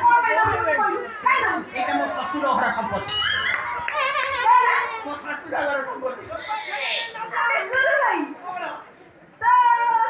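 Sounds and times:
woman speaking stage dialogue: 6.4s - 8.5s.

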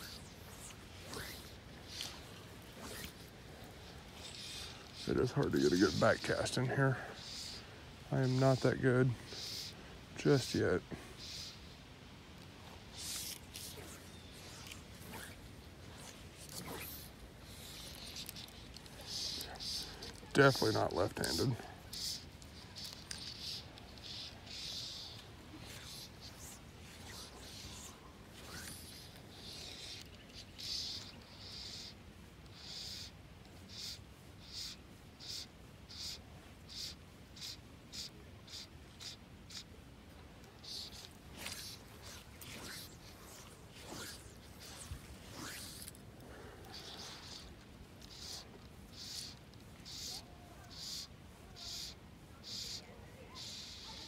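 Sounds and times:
rustles and clicks: 0.0s - 6.6s, 12.3s - 24.4s, 40.0s - 49.9s
fly line hissing through rod guides: 0.0s - 54.0s.

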